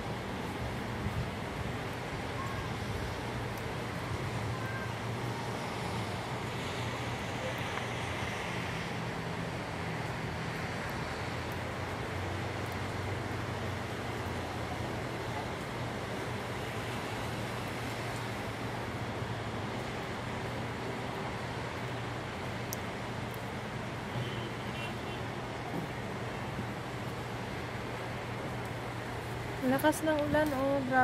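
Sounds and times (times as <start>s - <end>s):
heavy rain: 0.0s - 31.0s
low hum of road traffic: 0.0s - 31.0s.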